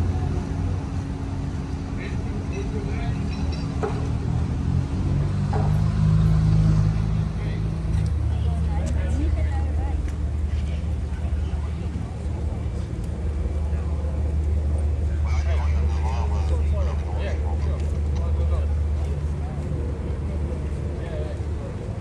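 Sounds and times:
boat engines idling: 0.0 - 22.0
faint voices: 6.8 - 22.0.

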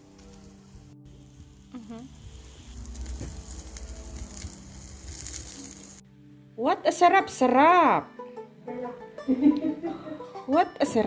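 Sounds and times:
meat sizzling over charcoal: 0.0 - 6.0.

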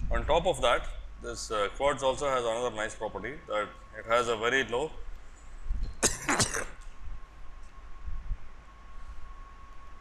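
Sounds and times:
faint steady hum: 0.0 - 10.0
man coughing: 6.0 - 6.8.

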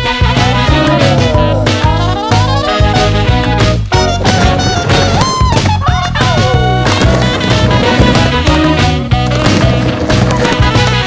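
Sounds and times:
swing jazz with brass: 0.0 - 11.0
skateboard rolling on wooden ramp: 0.4 - 11.0
skateboard knock: 1.0 - 11.0.

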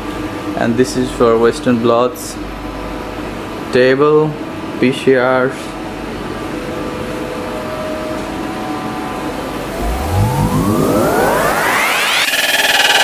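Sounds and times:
ventilation hum: 0.0 - 12.9
held synth chord: 6.4 - 13.0
rising synth sweep: 6.6 - 13.0.

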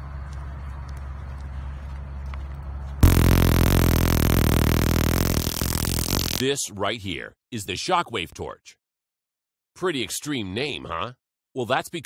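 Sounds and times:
electric arc crackling buzz: 3.0 - 6.4.

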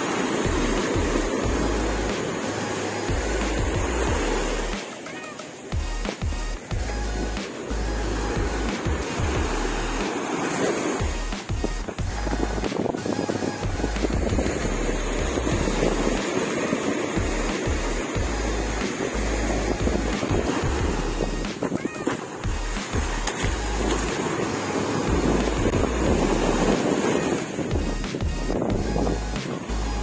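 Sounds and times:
background music: 0.0 - 30.0
waves breaking on a beach: 0.0 - 30.0
wind gusting on microphone: 6.8 - 30.0.

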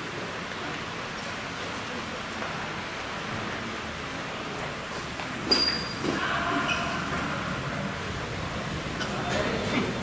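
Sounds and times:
indoor hall crowd background noise: 0.0 - 10.0.

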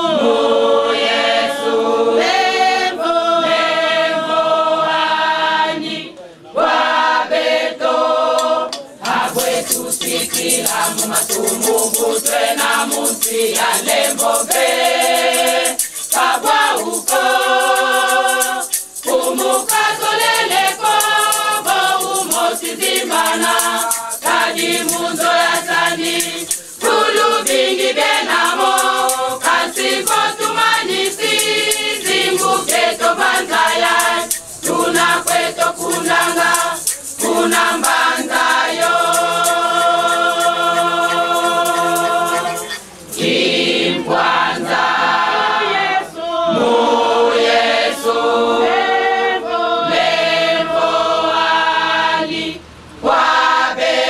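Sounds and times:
women's choir singing a hymn: 0.0 - 54.0
tambourine jingling: 9.0 - 45.8.

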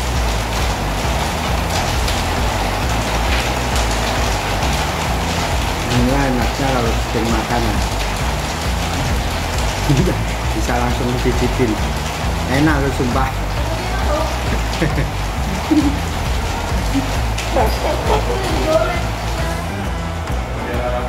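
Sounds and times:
low background music: 0.0 - 21.0
steady hiss like rain: 0.0 - 21.0
man speaking: 5.8 - 7.9, 9.8 - 13.5, 17.5 - 19.1.

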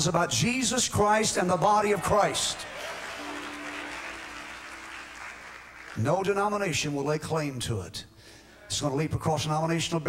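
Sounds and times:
congregation applauding: 1.8 - 6.7.

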